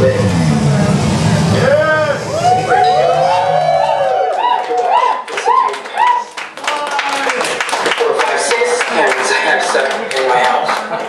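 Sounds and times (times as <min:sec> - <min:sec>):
warbling electronic tone: 0:00.0 - 0:04.6
sharp claps: 0:04.3 - 0:11.0.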